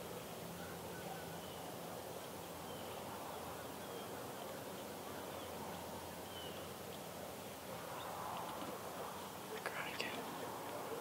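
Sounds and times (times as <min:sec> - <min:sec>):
person whispering: 0:09.6 - 0:10.3.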